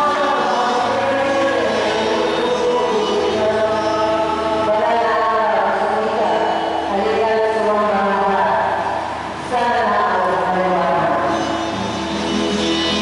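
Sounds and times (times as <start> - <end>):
church choir singing a hymn: 0.0 - 5.0.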